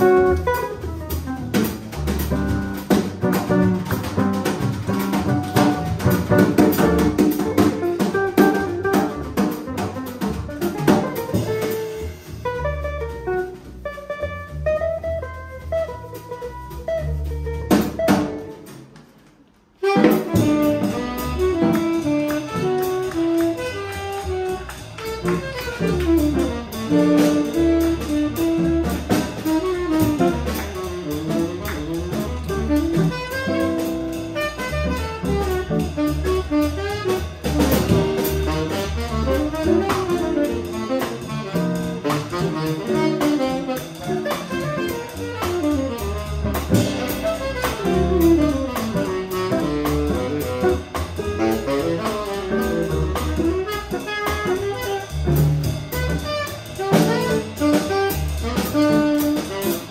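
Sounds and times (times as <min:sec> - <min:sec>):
upright bass: 0:00.0 - 0:19.1, 0:19.8 - 0:59.9
drum kit: 0:00.0 - 0:59.9
tenor saxophone: 0:19.8 - 0:59.9.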